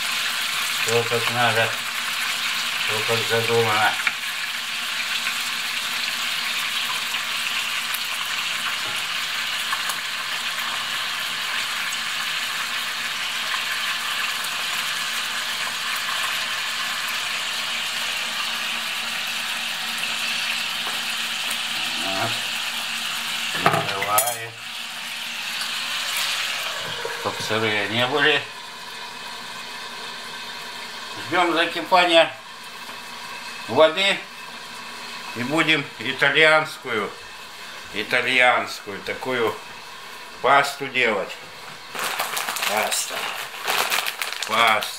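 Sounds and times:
sausages sizzling in a frying pan: 0.0 - 44.9.

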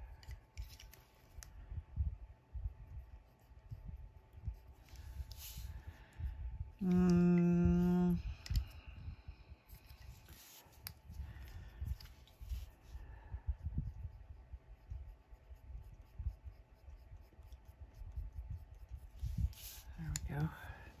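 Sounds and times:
pencil scratching on paper: 14.8 - 19.9.

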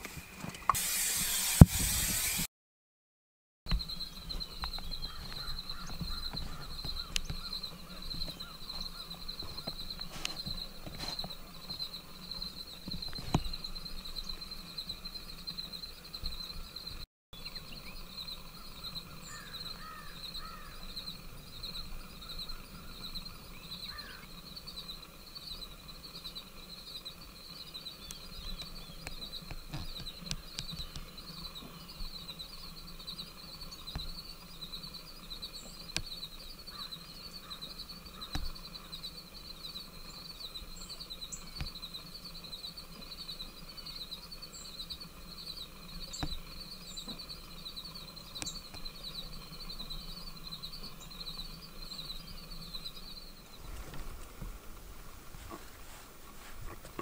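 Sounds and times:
faint bird chirps: 3.7 - 54.3
insect chorus pulsing: 3.7 - 57.0.

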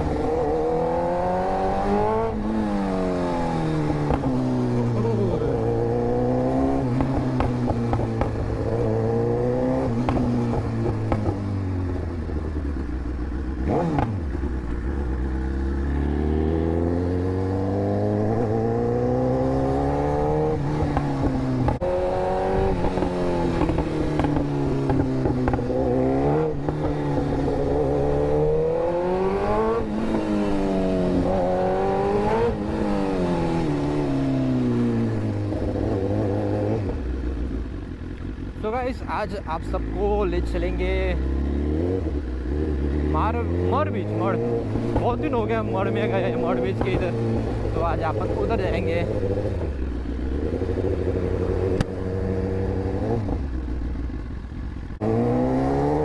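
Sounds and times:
motorcycle engine revving: 0.0 - 56.0.

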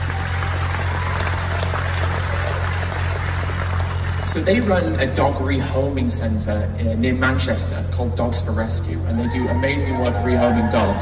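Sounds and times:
audience applauding: 0.0 - 5.0
low electrical hum: 0.0 - 11.0.

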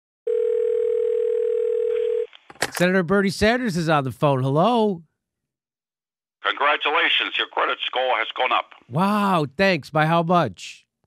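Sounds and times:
telephone dial tone: 0.3 - 2.3.

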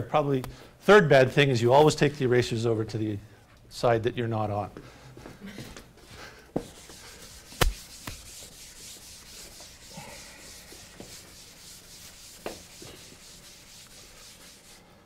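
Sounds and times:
eraser rubbing on chalkboard: 6.6 - 15.0.

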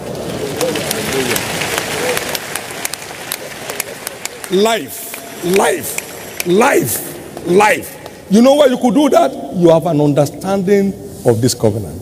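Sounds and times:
congregation clapping: 0.0 - 9.3.

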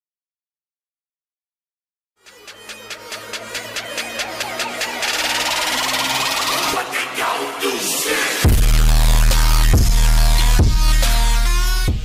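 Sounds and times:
electronic whoosh with rising sweep: 2.3 - 9.2.

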